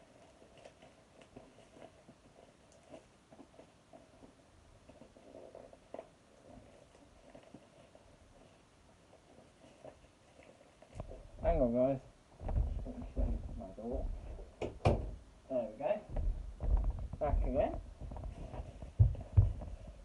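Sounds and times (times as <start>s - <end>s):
plastic packaging crinkling: 0.0s - 11.4s, 16.3s - 20.0s.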